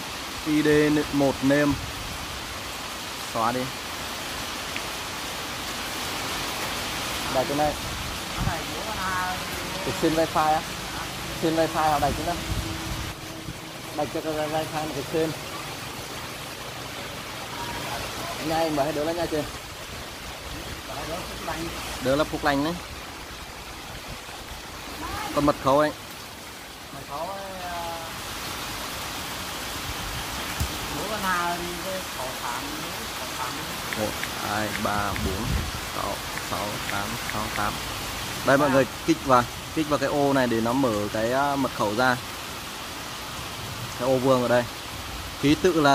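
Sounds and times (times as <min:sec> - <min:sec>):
steady hiss: 0:00.0 - 0:45.9.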